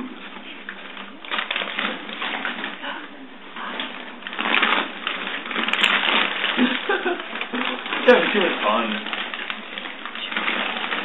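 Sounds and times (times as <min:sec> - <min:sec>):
wrapping paper crinkling: 0:00.3 - 0:11.0.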